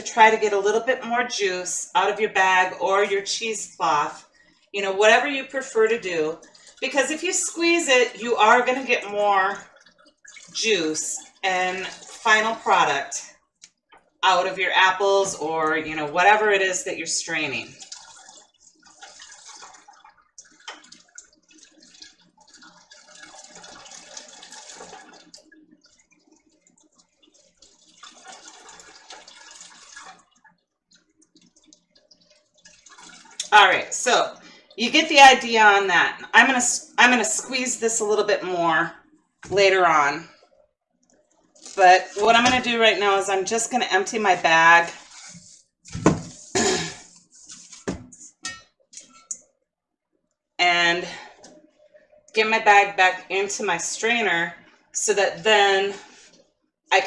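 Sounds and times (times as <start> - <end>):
juice trickling and splashing: 3.9 - 4.7, 5.3 - 14.6, 16.4 - 35.1, 38.9 - 49.6
cloth rustling: 44.9 - 49.3.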